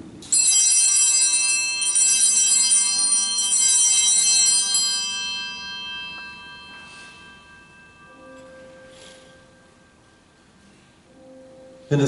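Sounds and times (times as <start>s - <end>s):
altar bells ringing: 0.2s - 12.0s.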